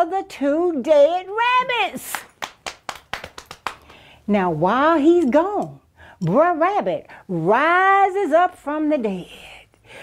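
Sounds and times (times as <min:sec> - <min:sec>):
sharp hand slaps: 0:02.0 - 0:04.0.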